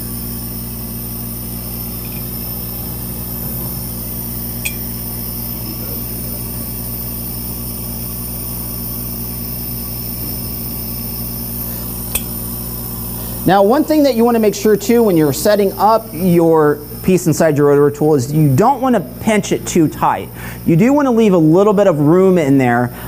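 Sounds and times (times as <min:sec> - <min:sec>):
machine hum: 0:00.0 - 0:23.0.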